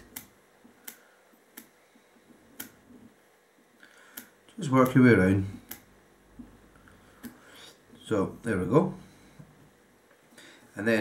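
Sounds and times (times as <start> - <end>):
faint sharp clicks: 0.1 - 1.8, 2.6 - 2.8, 4.1 - 5.0.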